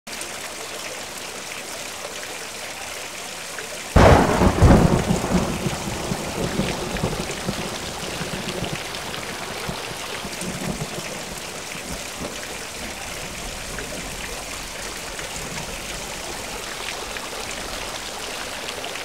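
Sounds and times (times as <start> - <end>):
running water: 0.1 - 19.0
thunderclap rumbling: 4.0 - 18.2.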